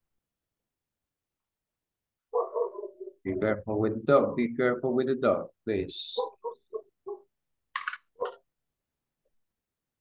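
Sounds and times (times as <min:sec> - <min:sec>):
dog yapping: 0:02.3 - 0:03.3, 0:06.2 - 0:07.3, 0:08.2 - 0:08.4.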